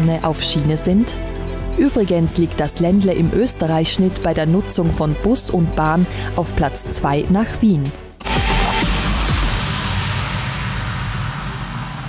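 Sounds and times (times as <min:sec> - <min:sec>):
rushing whoosh: 0:08.2 - 0:12.0
low rumble: 0:08.3 - 0:12.0.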